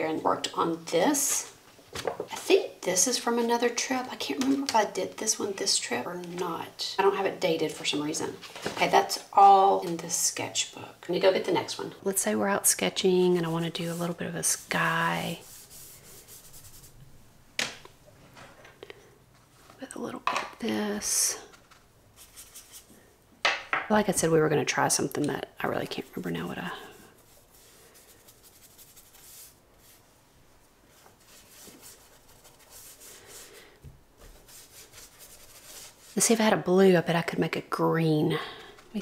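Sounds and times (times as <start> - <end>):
pigment stick scratching paper: 22.2 - 22.9, 26.9 - 30.0, 31.2 - 33.6, 34.2 - 36.2.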